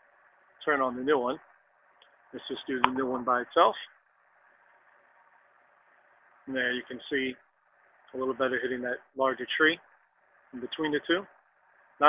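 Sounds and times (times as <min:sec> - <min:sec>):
faint steady hiss: 0:00.0 - 0:12.0.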